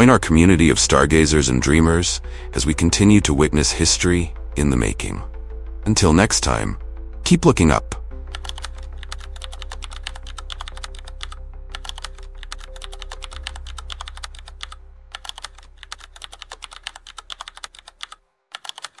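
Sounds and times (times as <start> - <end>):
computer keyboard typing clicks: 8.3 - 19.0.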